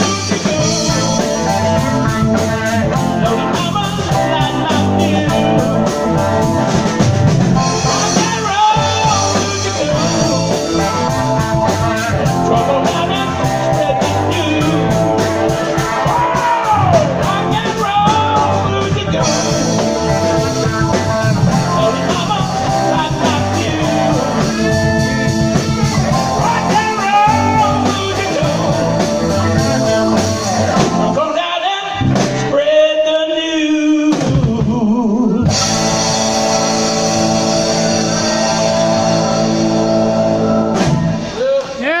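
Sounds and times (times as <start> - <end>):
live rock band playing: 0.0 - 33.1, 34.1 - 42.0
rock band final chord: 35.5 - 41.3
people whooping: 40.3 - 42.0.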